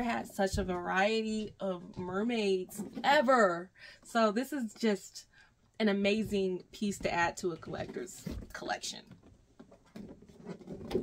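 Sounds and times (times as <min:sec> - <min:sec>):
cardboard box rustling and knocking: 0:09.6 - 0:11.0.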